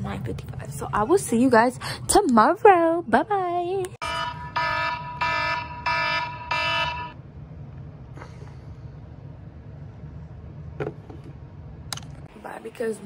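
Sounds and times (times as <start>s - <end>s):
phone alarm ringing: 4.0s - 7.2s.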